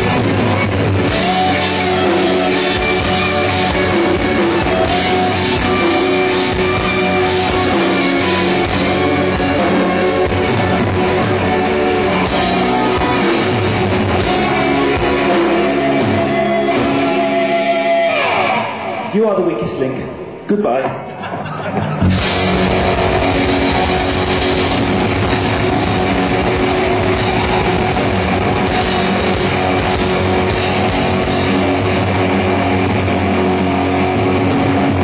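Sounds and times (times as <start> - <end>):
electric guitar chord sliding down: 0.0 - 19.2, 22.2 - 35.0.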